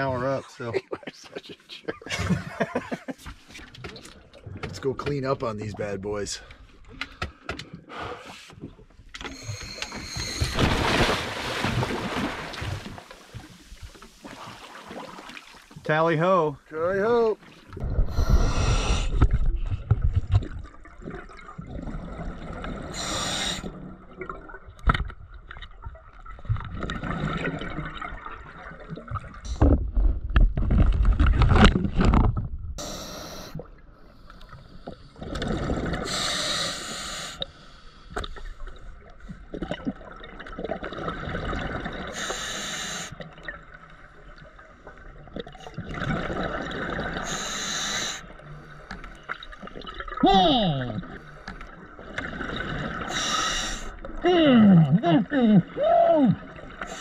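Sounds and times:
diver breathing through regulator: 7.0s - 8.6s, 9.3s - 10.6s, 18.0s - 19.4s, 22.9s - 23.8s, 32.8s - 35.3s, 36.0s - 38.6s, 42.1s - 43.2s, 47.2s - 49.0s, 53.0s - 54.0s, 56.8s - 57.0s
low rumble of moving water: 7.8s - 36.3s, 37.4s - 42.3s, 43.2s - 57.0s.

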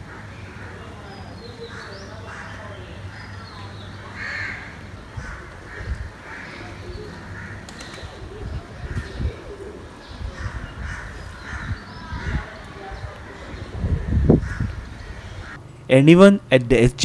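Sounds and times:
crows cawing: 0.0s - 3.3s, 4.0s - 8.0s, 8.8s - 15.6s.

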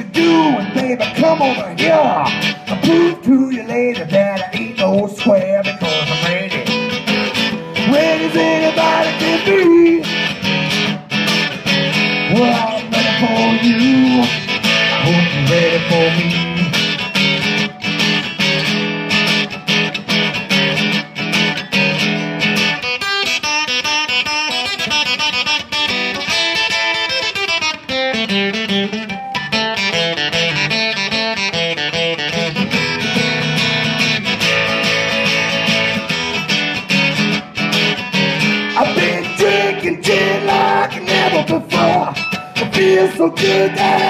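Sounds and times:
acoustic guitar blues playing: 0.0s - 44.0s.

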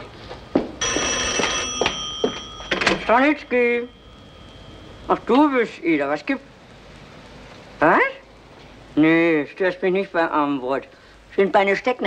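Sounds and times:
footsteps: 0.0s - 3.1s
telephone bell ringing: 0.5s - 5.4s.

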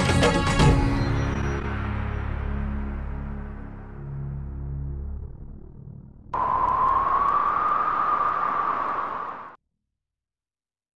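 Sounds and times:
electronic hiss with whistling tone: 6.4s - 9.6s.

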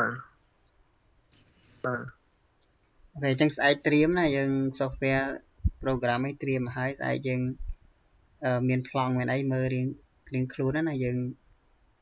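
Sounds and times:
person speaking a syllable: 0.0s - 0.2s, 1.9s - 2.1s.

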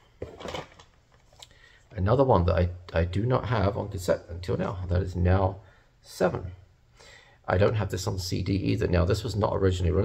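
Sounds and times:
plastic cases rustling and clattering: 0.0s - 1.5s.

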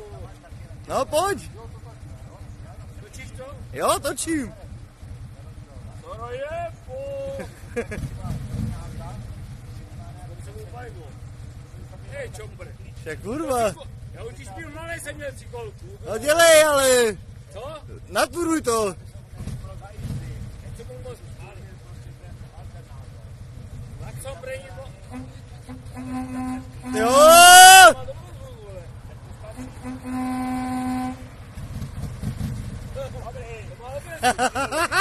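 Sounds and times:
motor trike engine idling: 0.0s - 35.0s.

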